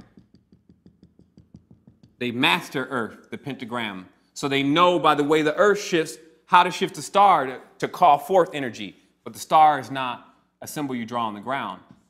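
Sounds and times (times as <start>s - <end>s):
marker tapping a whiteboard: 0.0s - 2.4s.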